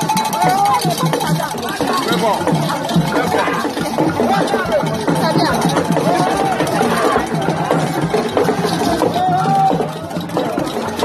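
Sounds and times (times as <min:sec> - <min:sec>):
music with a steady beat: 0:00.0 - 0:11.0
voices singing and calling: 0:00.0 - 0:11.0.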